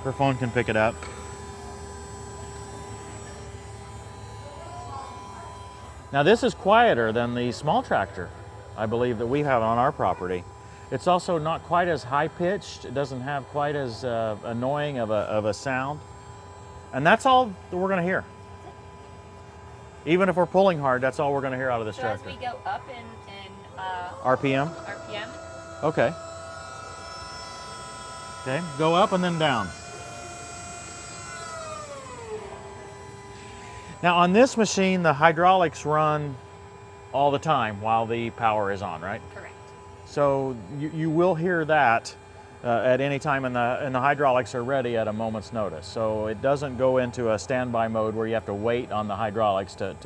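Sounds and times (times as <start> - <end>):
faint steady tones: 0.0 - 50.0
hydraulic pump whine: 0.0 - 50.0
quiet electric hum: 0.0 - 50.0.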